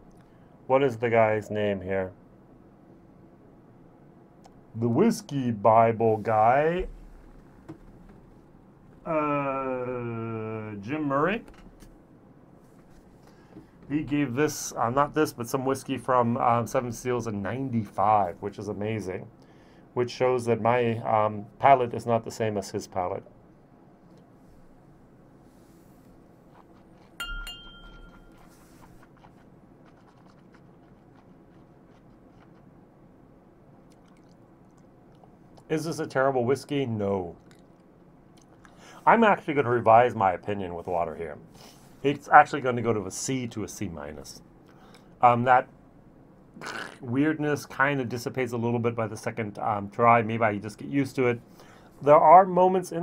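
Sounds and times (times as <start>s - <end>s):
glass clinking: 27.2s - 28.5s.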